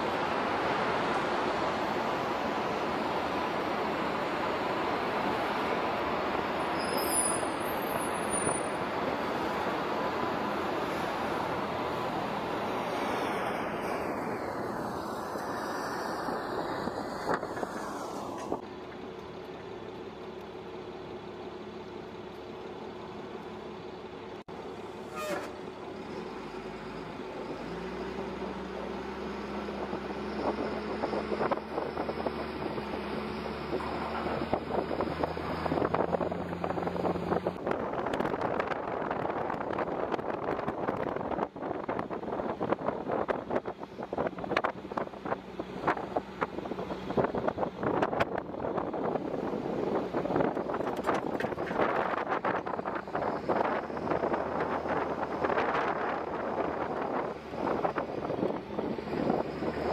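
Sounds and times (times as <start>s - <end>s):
military vehicle engine hum: 0.0s - 59.9s.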